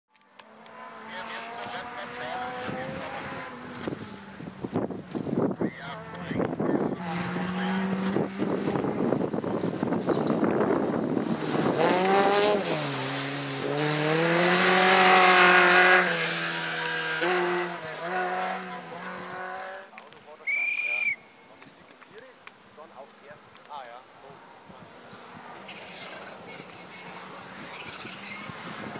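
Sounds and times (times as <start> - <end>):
rally car engines revving: 0.2 - 20.4, 22.6 - 28.9.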